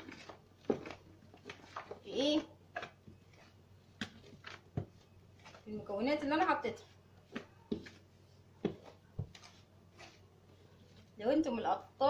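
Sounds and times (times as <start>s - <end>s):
hand kneading dough in basin: 0.0s - 11.8s.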